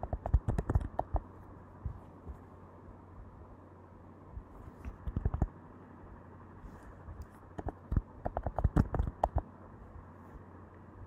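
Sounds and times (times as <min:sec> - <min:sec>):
computer keyboard keystrokes: 0:00.0 - 0:01.3, 0:05.0 - 0:05.5, 0:07.6 - 0:09.4.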